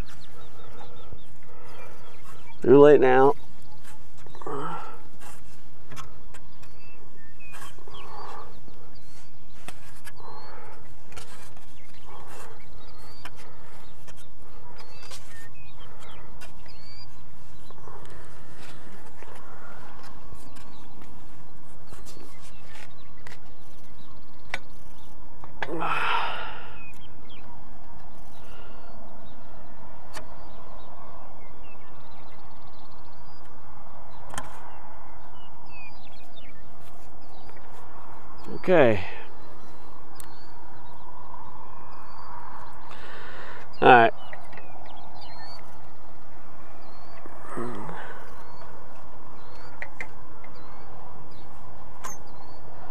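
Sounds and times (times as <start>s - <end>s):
birds chirping: 0.0s - 52.9s
breathy vocal sounds: 4.4s - 5.2s, 25.6s - 26.9s, 47.2s - 48.5s.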